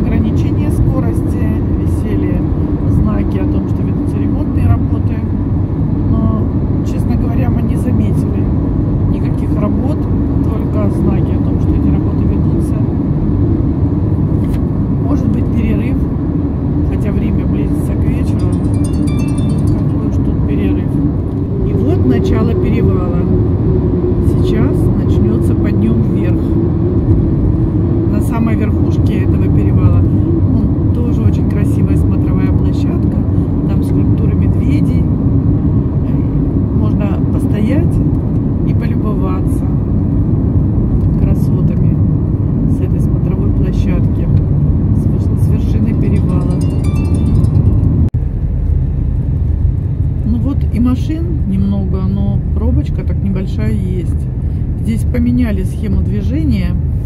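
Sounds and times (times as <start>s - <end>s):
car engine and tyre noise: 0.0s - 57.0s.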